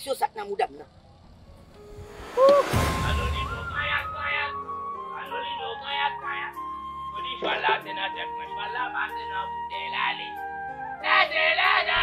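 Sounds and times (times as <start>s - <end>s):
background music: 0.5s - 12.0s
rising whoosh: 1.3s - 3.9s.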